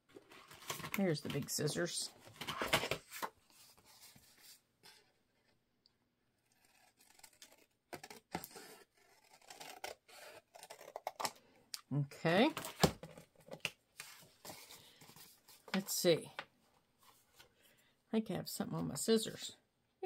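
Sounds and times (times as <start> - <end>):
scissors cutting paper: 6.4 - 11.3.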